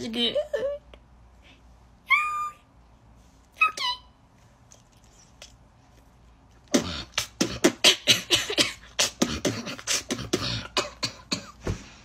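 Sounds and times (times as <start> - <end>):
woman beatboxing: 6.7 - 11.0.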